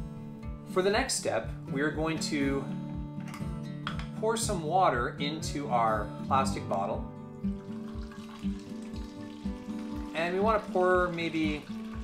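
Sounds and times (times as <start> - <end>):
background music with steady beat: 0.0 - 12.0
water pouring into plastic bottle: 7.4 - 12.0.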